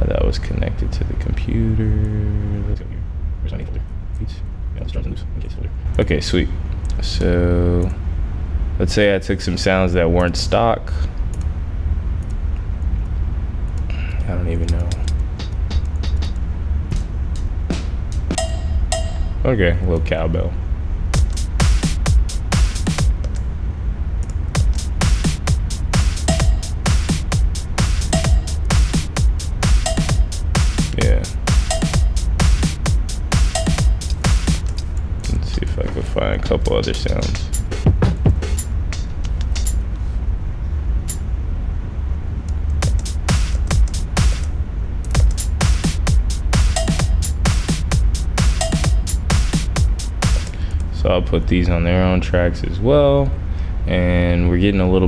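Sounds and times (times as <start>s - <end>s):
steady low hum: 0.0s - 55.0s
deep low end: 9.8s - 53.8s
electronic hi-hat hits: 14.7s - 19.5s, 21.0s - 23.4s, 24.3s - 39.9s, 42.7s - 51.2s.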